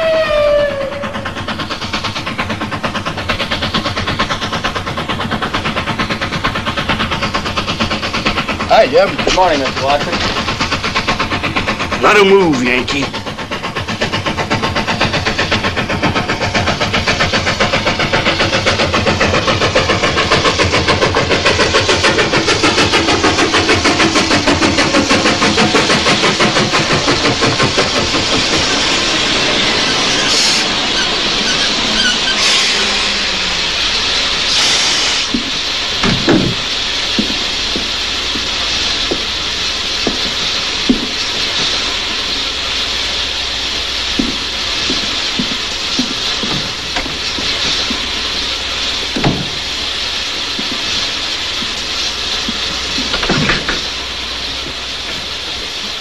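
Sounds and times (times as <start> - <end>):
steam hissing: 0.0 - 56.0
steam locomotive chuffing: 0.0 - 56.0
clanks and knocks: 35.3 - 38.5, 40.0 - 41.8, 44.2 - 48.0, 49.1 - 49.6, 52.4 - 53.9
heavy thump: 35.4 - 37.3, 49.2 - 49.6.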